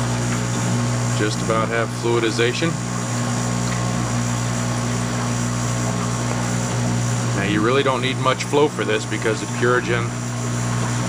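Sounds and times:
aquarium pump humming: 0.0 - 11.0.

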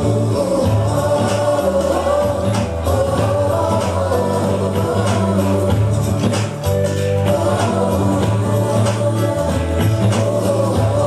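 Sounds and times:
bass line and light percussion: 0.0 - 11.0
group of voices singing: 0.0 - 11.0.

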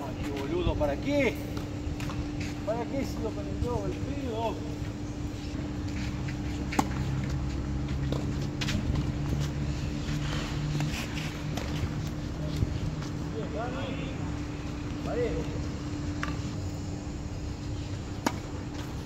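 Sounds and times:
low hum and rumble: 0.0 - 19.0
rackets hitting tennis ball: 6.0 - 7.4, 18.1 - 19.0.

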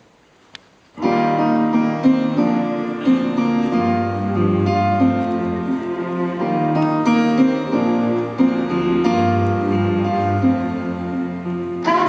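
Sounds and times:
acoustic instrumental music: 0.9 - 12.0.

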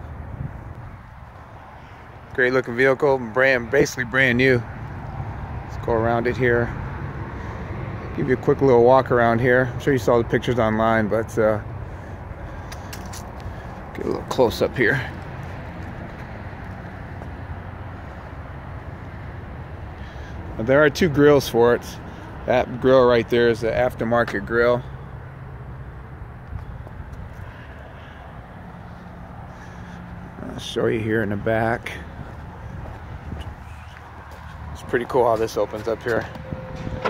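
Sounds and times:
distant engine hum: 0.0 - 37.0.

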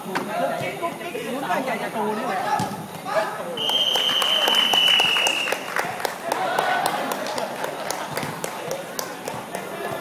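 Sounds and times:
players and spectators calling out: 0.0 - 10.0
referee's whistle blast: 3.6 - 5.5.

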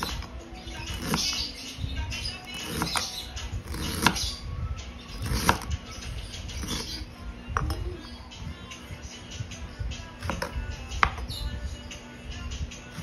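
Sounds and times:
knife cutting ginger: 2.5 - 4.3, 5.2 - 5.7.

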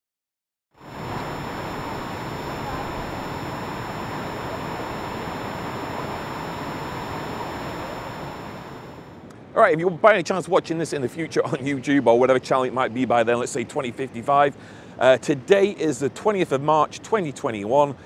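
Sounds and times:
waterfall rushing: 0.8 - 8.9.

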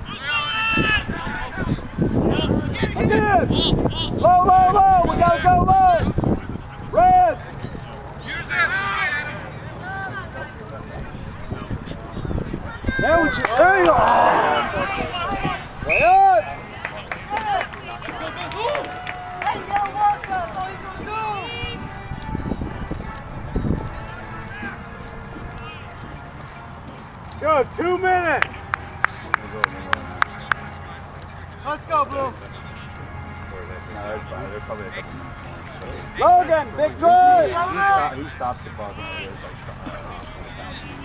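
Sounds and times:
people shouting and calling: 0.0 - 7.5, 12.5 - 26.6.

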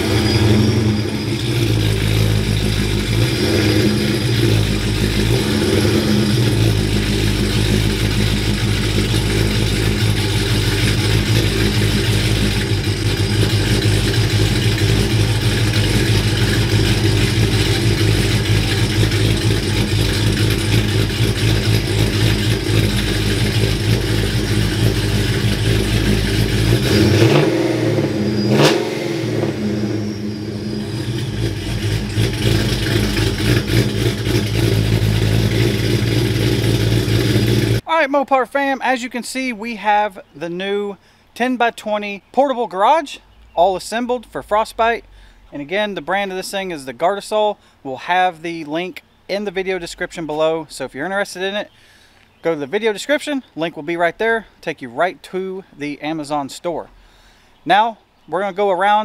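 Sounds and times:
truck engine idling: 0.0 - 37.9.

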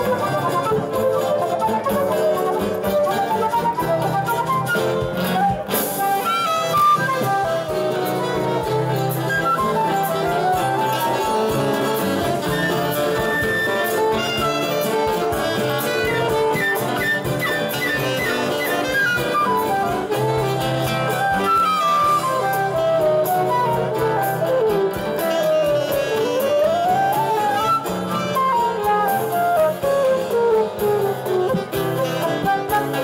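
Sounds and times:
acoustic guitar: 0.0 - 33.0
cavaquinho strumming: 0.0 - 33.0
flute melody: 0.0 - 33.0
saxophone melody: 0.0 - 33.0.

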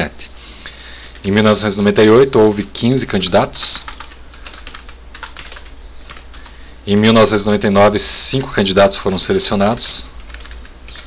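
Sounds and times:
typing on computer keyboard: 3.8 - 6.5, 10.2 - 11.0.

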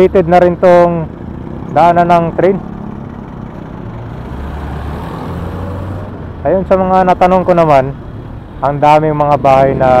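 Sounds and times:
rumble of passing vehicles: 0.0 - 10.0.

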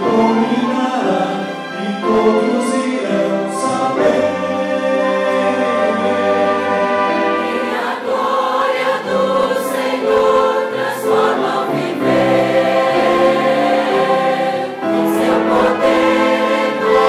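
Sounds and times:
mixed choir singing: 0.0 - 17.0.

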